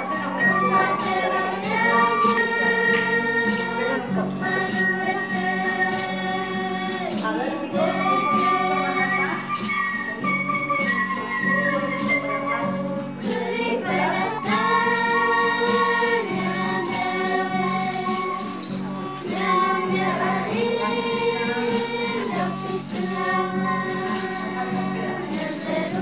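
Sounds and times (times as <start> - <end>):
voices singing together: 0.0 - 26.0
shaker rattling: 14.3 - 26.0.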